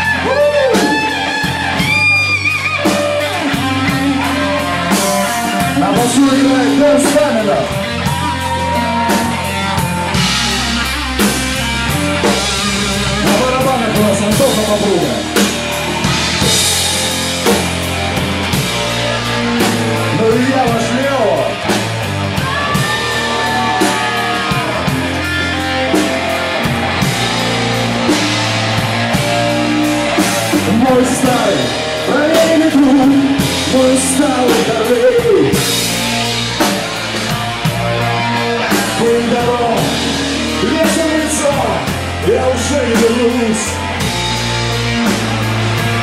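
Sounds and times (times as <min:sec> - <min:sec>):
bass guitar notes: 0:00.0 - 0:46.0
blues-rock band playing: 0:00.0 - 0:46.0
drum kit with cymbal crashes: 0:00.0 - 0:46.0
electric guitar: 0:00.0 - 0:46.0.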